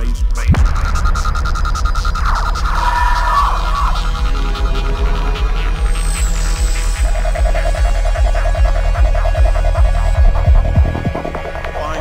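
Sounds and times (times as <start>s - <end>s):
rolling bassline: 0.0s - 12.0s
rapid pulsing synth: 0.5s - 12.0s
kick drum: 8.6s - 11.8s.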